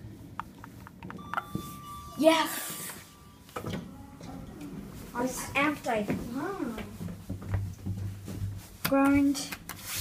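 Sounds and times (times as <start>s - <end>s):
steady electronic beep: 1.2s - 4.3s.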